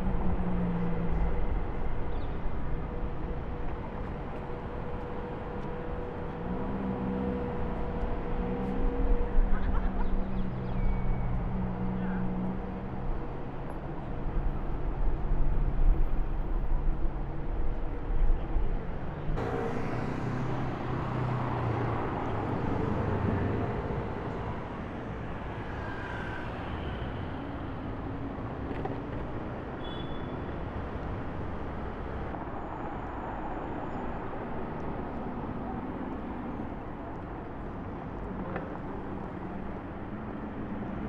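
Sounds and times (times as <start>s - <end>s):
tyre and road noise: 0.0s - 41.0s.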